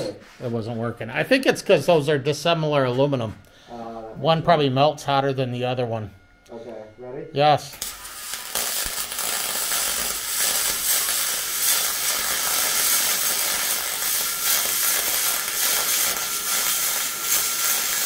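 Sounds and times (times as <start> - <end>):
welder arc crackling hiss: 7.4 - 18.0.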